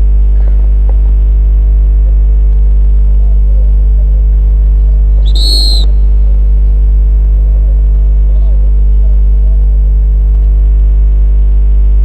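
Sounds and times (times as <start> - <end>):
low electrical hum: 0.0 - 12.0
referee's whistle blast: 5.2 - 6.0.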